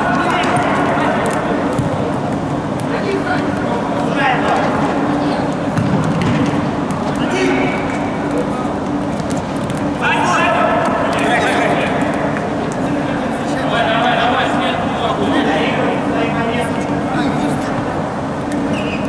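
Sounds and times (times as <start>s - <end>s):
players shouting in a sports hall: 6.8s - 8.8s, 9.8s - 16.1s.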